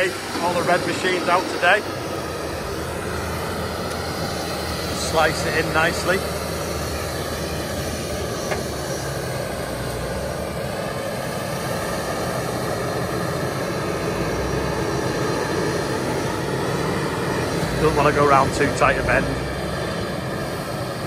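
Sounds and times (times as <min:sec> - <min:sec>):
tractor diesel engine under load: 0:00.0 - 0:21.0.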